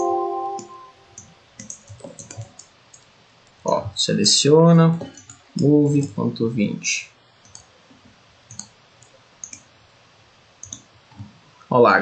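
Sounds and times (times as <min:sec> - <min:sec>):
faint computer mouse clicks: 0:01.2 - 0:03.1, 0:08.5 - 0:09.7, 0:10.6 - 0:10.9.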